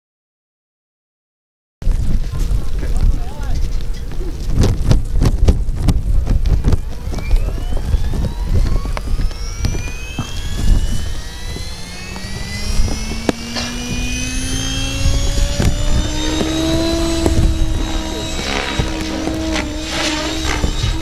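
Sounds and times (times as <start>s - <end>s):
deep rotor hum: 1.8s - 21.0s
rising helicopter whine: 2.6s - 21.0s.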